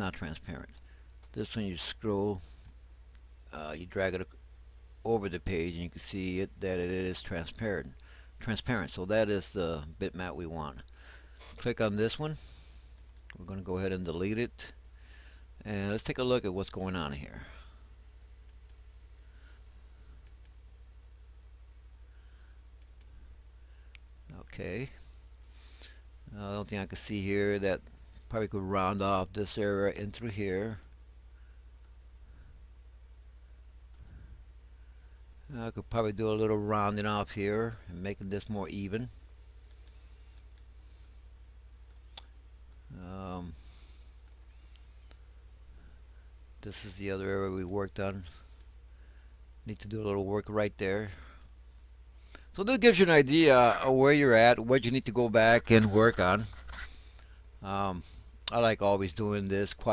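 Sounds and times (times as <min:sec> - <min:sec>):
low hum: 0:00.0 - 0:59.9.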